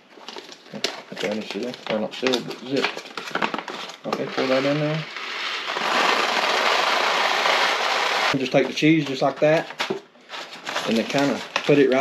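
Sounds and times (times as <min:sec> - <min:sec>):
dry pasta pouring into foil bag: 0:04.2 - 0:08.4, 0:10.7 - 0:12.0.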